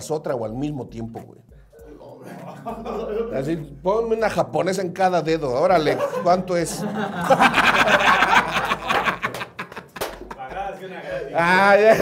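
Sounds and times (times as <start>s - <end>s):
laughter: 2.2s - 3.3s, 5.9s - 10.4s.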